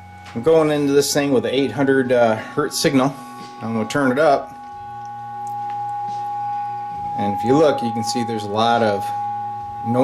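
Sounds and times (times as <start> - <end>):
low hum: 0.0 - 10.0
sine test tone through amp: 0.0 - 10.0.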